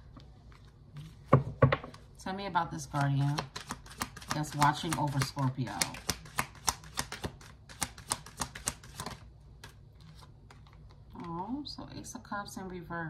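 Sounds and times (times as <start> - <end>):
cards being shuffled: 2.8 - 11.0.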